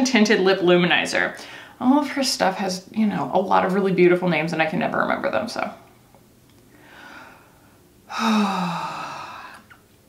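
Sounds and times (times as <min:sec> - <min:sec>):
faint breath in: 0:06.7 - 0:09.7
woman sighing: 0:08.1 - 0:09.8.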